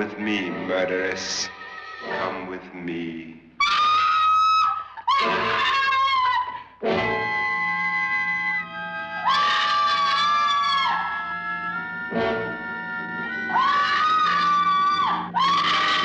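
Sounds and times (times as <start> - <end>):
woman screaming: 3.6 - 16.0
dramatic horror film score: 3.7 - 16.0.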